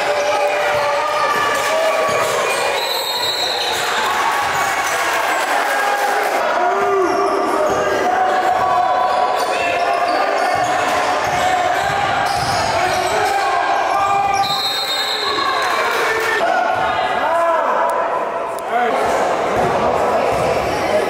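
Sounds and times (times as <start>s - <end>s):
sneakers squeaking: 8.5s - 16.0s
ball bouncing on wooden court: 19.5s - 20.7s.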